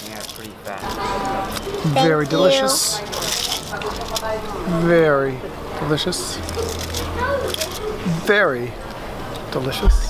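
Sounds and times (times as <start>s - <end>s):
foil wrapper crinkling: 0.0s - 4.4s, 6.4s - 7.9s
murmur of background voices: 0.0s - 10.0s.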